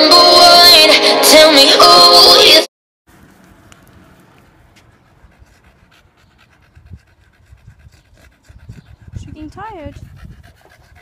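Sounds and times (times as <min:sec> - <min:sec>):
dog panting: 0:04.7 - 0:11.0.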